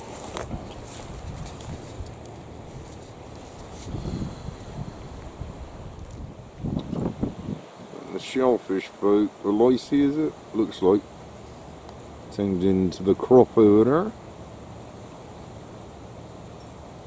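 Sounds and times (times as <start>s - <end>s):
wind buffeting microphone: 0.0s - 3.0s, 3.6s - 7.7s.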